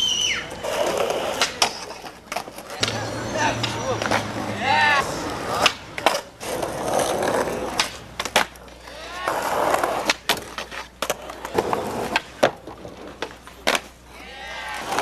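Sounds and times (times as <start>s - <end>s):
skateboard wheels rolling on concrete: 0.0s - 15.0s.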